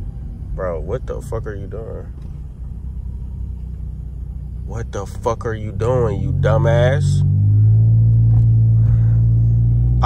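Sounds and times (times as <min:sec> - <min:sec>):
car engine rumble inside cabin: 0:00.0 - 0:10.0.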